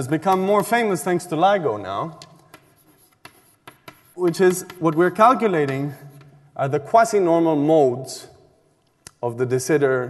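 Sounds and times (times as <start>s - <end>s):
chalk tapping on blackboard: 0.1s - 1.1s, 2.1s - 6.4s.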